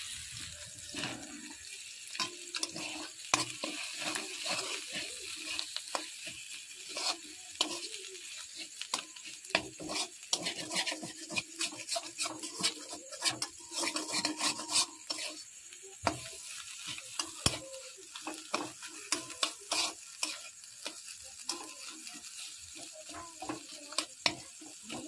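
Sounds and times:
light sizzle: 0:00.0 - 0:25.0
metal spoon scraping a pan: 0:00.1 - 0:25.0.

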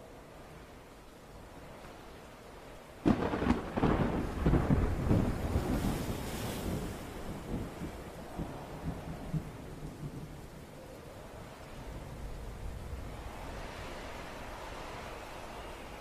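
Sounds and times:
thunder crash and rumbles: 0:03.0 - 0:10.2.

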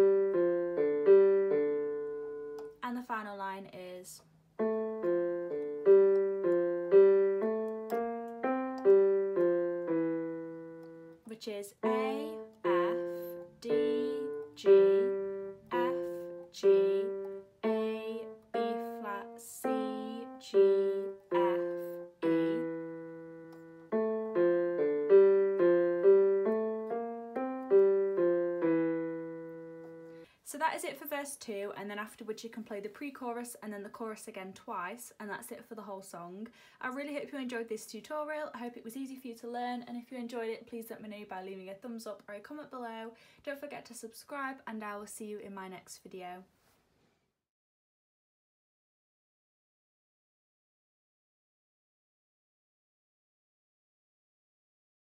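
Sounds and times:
slow piano melody on keyboard: 0:00.0 - 0:02.8, 0:04.6 - 0:11.2, 0:11.8 - 0:30.3.

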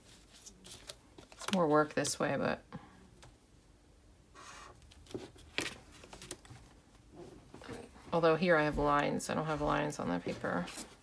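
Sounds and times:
paper rustling: 0:00.0 - 0:01.7, 0:04.9 - 0:06.8.

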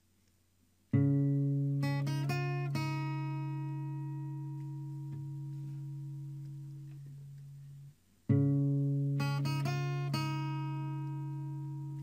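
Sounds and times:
guitar chords and notes: 0:00.9 - 0:12.0.

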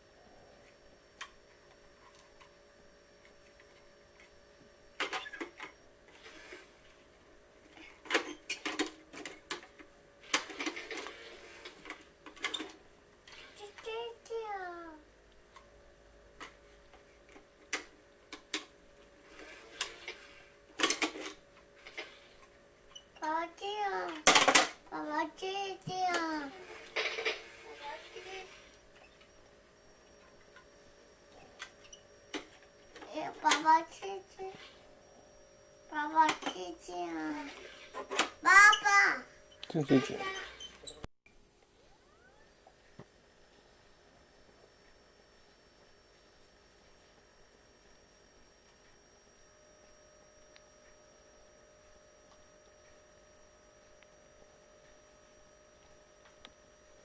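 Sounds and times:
toy cash register clicks and knocks: 0:19.4 - 0:22.1, 0:24.1 - 0:24.8, 0:26.1 - 0:27.5, 0:33.5 - 0:34.2.

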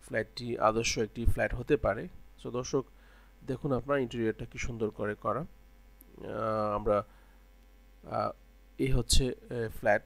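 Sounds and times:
person speaking: 0:00.0 - 0:07.1, 0:08.0 - 0:10.0
low electrical hum: 0:00.0 - 0:10.0.

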